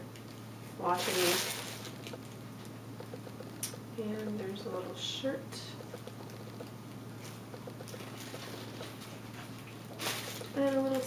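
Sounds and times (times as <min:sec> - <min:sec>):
steady low hum: 0:00.0 - 0:11.0
tissue paper rustling: 0:00.8 - 0:02.1, 0:08.2 - 0:11.0.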